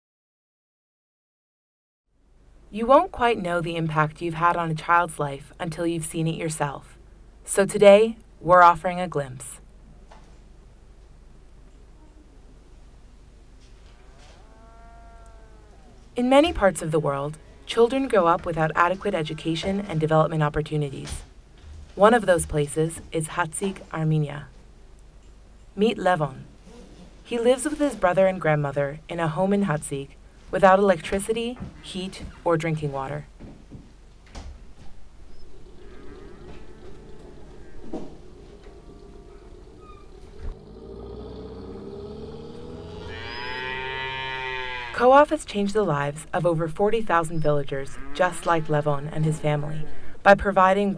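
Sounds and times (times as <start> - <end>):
cow mooing: 13.9 - 16.8, 35.4 - 45.0, 47.8 - 49.9.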